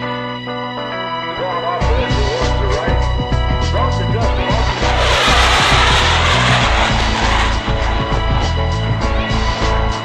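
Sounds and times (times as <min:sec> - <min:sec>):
fighter jet roaring past: 0:04.0 - 0:09.2.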